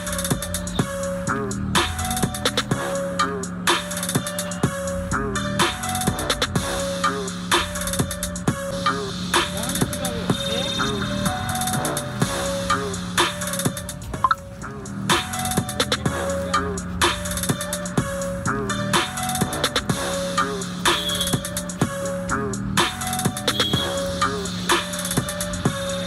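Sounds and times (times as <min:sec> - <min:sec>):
bass line: 0:00.0 - 0:26.0
hip-hop drum machine beat: 0:00.0 - 0:26.0
voice in music: 0:00.0 - 0:26.0.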